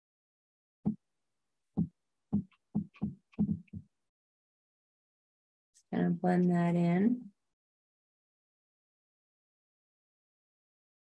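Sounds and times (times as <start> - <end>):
paintbrush dabbing taps: 2.4 - 3.8.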